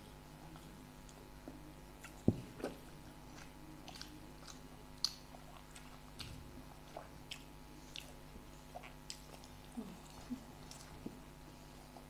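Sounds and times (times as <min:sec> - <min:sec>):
chewing and crunching: 0:00.4 - 0:12.0.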